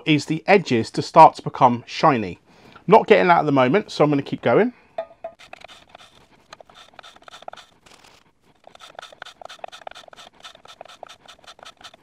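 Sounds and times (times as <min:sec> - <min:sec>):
chisel scraping on abrasive paper: 0:05.4 - 0:12.0.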